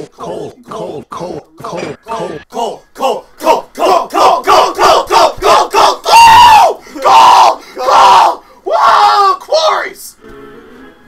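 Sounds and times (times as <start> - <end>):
people yelling: 0.0 - 10.1.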